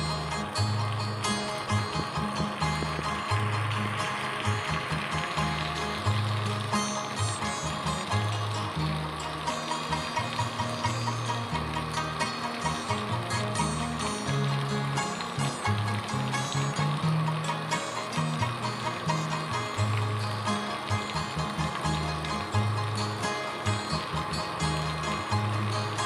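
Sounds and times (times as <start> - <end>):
background music with bass line: 0.0 - 26.0
steady rain falling: 0.0 - 26.0.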